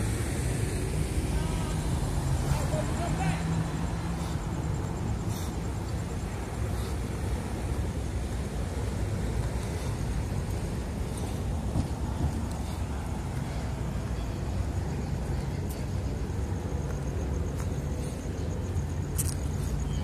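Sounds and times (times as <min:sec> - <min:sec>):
cars driving past: 0:00.0 - 0:20.0.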